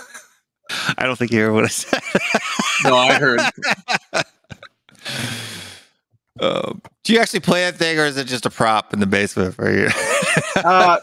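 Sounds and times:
man laughing breaths: 0:02.6 - 0:05.8
breathy sigh: 0:05.0 - 0:05.9.

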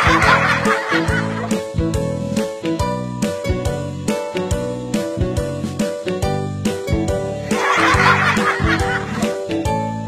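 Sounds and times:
background music with a beat: 0:00.0 - 0:10.0.

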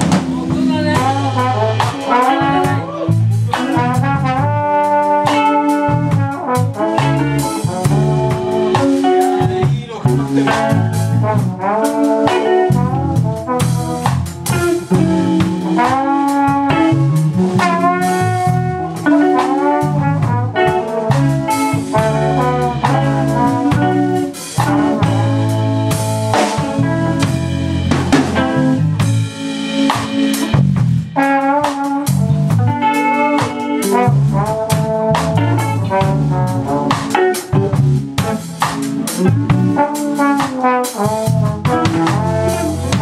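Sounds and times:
drum kit: 0:00.0 - 0:43.0
electric bass: 0:00.0 - 0:43.0
electric guitar: 0:00.0 - 0:43.0
trombone melody: 0:00.0 - 0:43.0.

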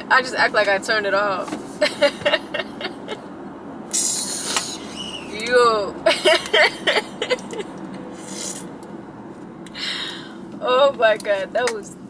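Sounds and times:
road noise inside a car: 0:00.0 - 0:12.0.

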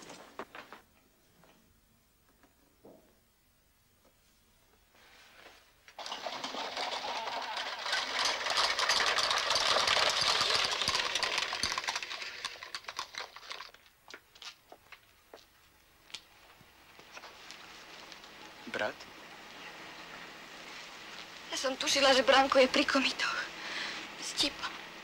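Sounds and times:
dense rustling crackling noise: 0:05.0 - 0:23.3.

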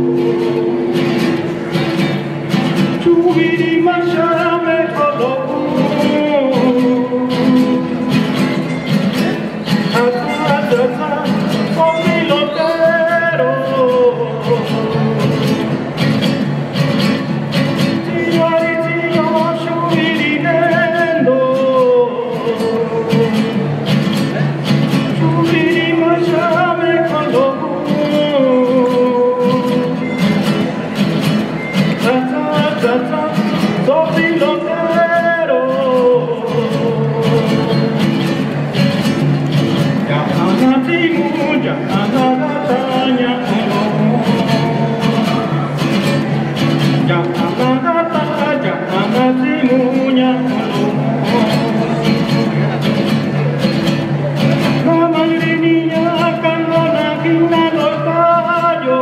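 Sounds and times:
man singing: 0:00.0 - 0:01.5, 0:02.5 - 0:30.6, 0:31.7 - 0:59.0
acoustic guitars strumming: 0:00.0 - 0:59.0.

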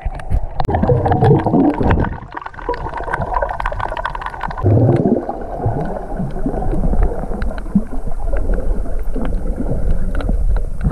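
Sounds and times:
sharp underwater clicks: 0:00.0 - 0:10.9
underwater gurgling and sloshing: 0:00.0 - 0:10.9.

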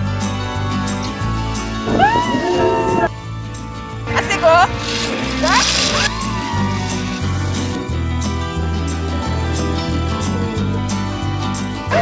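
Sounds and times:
background music: 0:00.0 - 0:12.0
person crying out: 0:01.9 - 0:03.1, 0:05.5 - 0:07.2.

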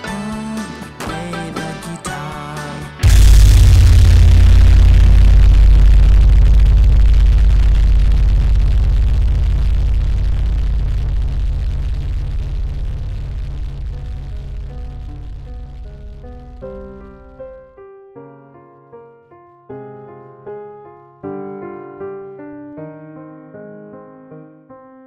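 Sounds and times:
metal music: 0:03.0 - 0:17.6.

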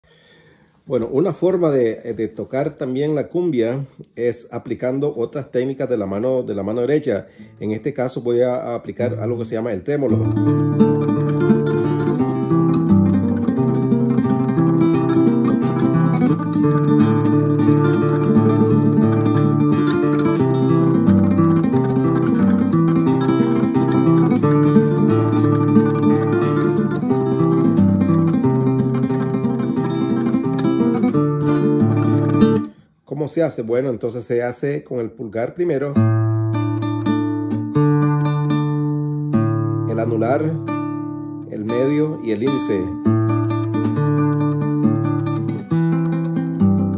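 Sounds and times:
classical guitar tremolo: 0:08.9 - 0:32.8, 0:36.0 - 0:46.9.

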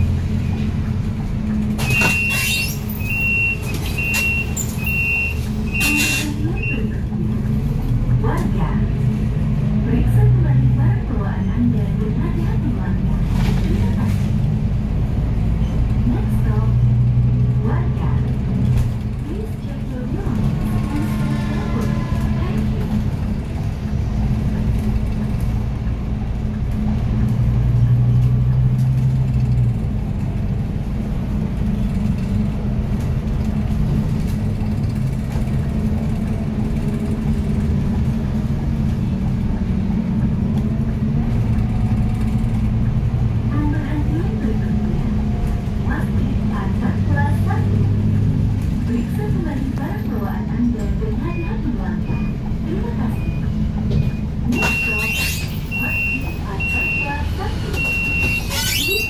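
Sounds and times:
bus drone on the road: 0:00.0 - 0:59.0.

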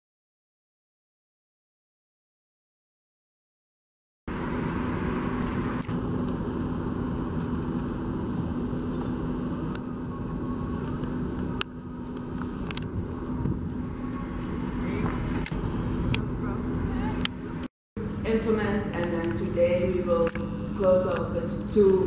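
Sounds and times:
passing cars rumbling: 0:04.3 - 0:10.8
low hum: 0:04.3 - 0:22.0.

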